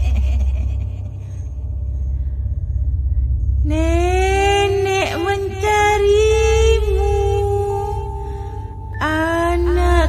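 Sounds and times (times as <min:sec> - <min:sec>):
cackling laugh: 0:00.0 - 0:01.5
low horror drone: 0:00.0 - 0:10.0.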